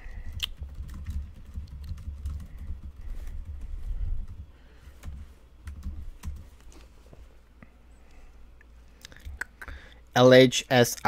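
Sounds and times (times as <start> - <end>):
computer keyboard typing: 0.2 - 6.5.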